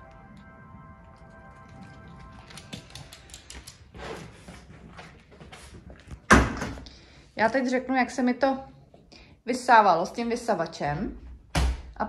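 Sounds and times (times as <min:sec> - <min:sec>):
faint background music: 0:00.0 - 0:12.0
dog claws clicking on hard floor: 0:02.4 - 0:04.0.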